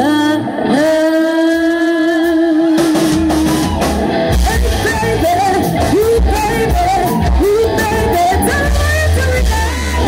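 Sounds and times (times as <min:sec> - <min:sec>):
woman singing: 0:00.0 - 0:03.6, 0:04.4 - 0:10.0
bass guitar: 0:00.0 - 0:10.0
electric guitar: 0:00.0 - 0:10.0
drum kit: 0:02.2 - 0:10.0.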